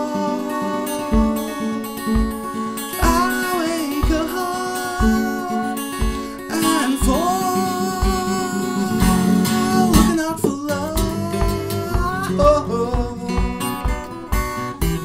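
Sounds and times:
fingerpicked acoustic guitar: 0.0s - 15.0s
boot stamping on floor: 1.1s - 3.3s, 4.0s - 4.3s, 5.0s - 6.4s, 9.9s - 15.0s.

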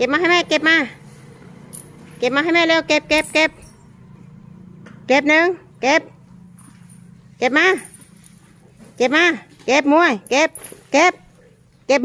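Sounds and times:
woman's sing-song coaxing voice: 2.2s - 3.7s.

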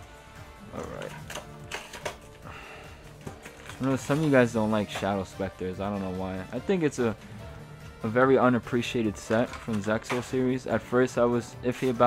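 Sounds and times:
background music: 0.0s - 12.0s
tin clicking and rustling: 0.8s - 2.4s, 3.2s - 5.1s.

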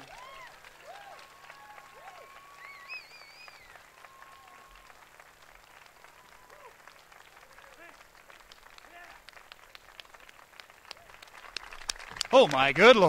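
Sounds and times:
scattered applause: 0.0s - 13.0s
high whistles: 1.5s - 4.8s.

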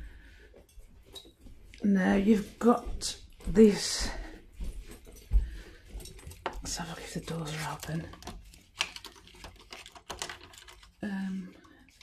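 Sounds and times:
plastic blind slats clicking and rattling: 6.7s - 11.0s.

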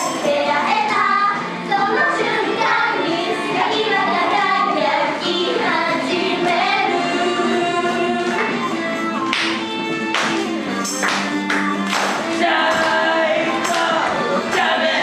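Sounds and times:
women singing pop song: 0.0s - 8.8s, 12.2s - 15.0s.

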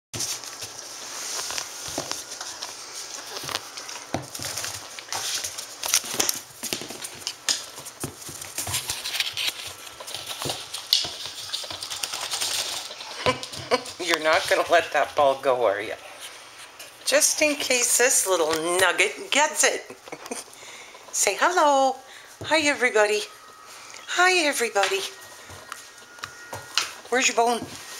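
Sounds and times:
rustling: 0.2s - 19.0s, 22.1s - 27.9s
dog claws clicking on tile: 8.5s - 13.7s.

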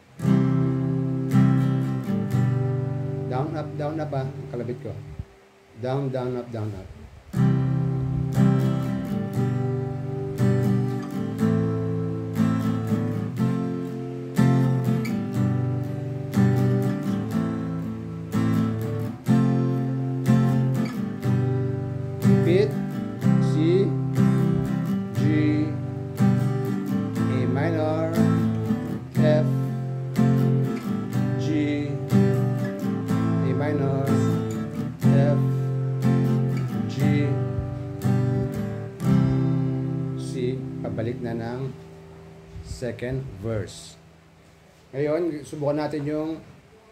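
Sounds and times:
acoustic guitar strumming chords: 0.0s - 46.9s.

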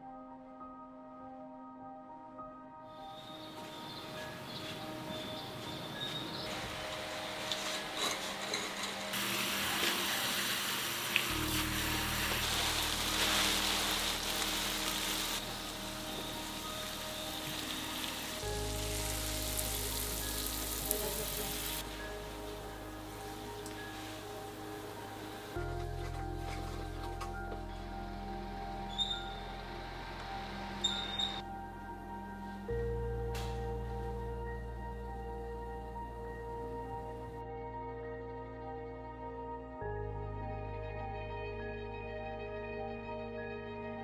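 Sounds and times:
soft ambient music: 0.0s - 44.0s
hose spraying water on leaves: 6.4s - 25.7s
deep bass notes: 11.3s - 43.4s.

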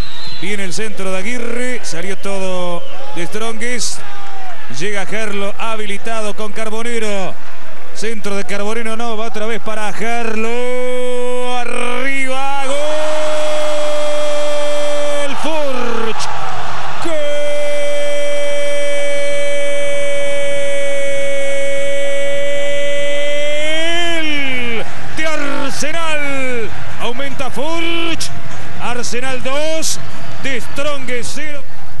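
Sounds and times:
commentator shouting goal: 8.0s - 31.7s.

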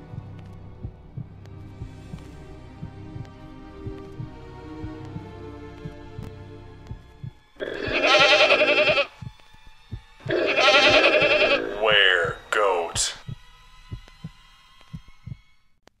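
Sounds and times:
low heartbeat-like thumping: 0.0s - 12.4s, 13.2s - 15.6s
goat bleating: 7.6s - 9.2s, 10.3s - 12.4s.

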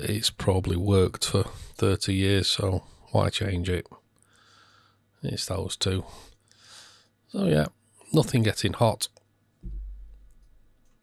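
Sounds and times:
low thump: 9.6s - 10.3s.

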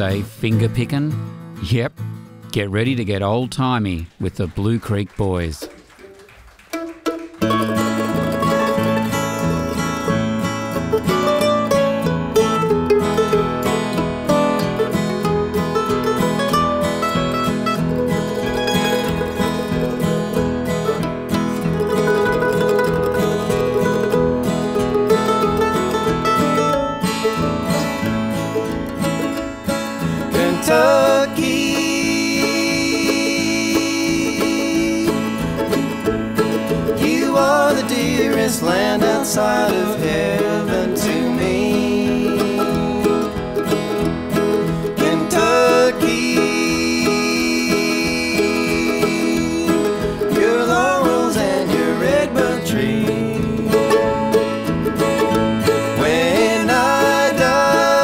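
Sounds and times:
acoustic guitar: 0.0s - 58.0s
mandolin: 4.6s - 58.0s
people singing: 30.3s - 35.6s, 36.8s - 43.6s, 44.9s - 54.4s, 55.8s - 58.0s.

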